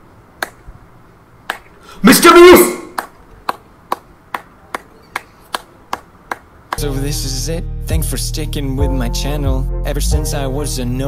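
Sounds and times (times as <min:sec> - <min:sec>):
person clapping slowly: 0:00.4 - 0:00.6, 0:01.5 - 0:01.8, 0:02.9 - 0:06.8.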